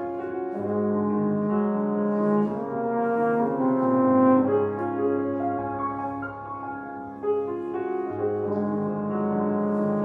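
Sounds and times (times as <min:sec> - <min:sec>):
french horn solo: 0:00.0 - 0:10.0
grand piano accompaniment: 0:00.0 - 0:10.0.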